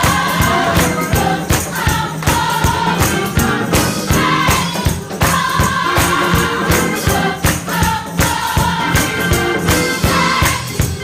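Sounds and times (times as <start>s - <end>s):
drums keeping a steady beat: 0.0s - 11.0s
gospel choir singing: 0.0s - 11.0s.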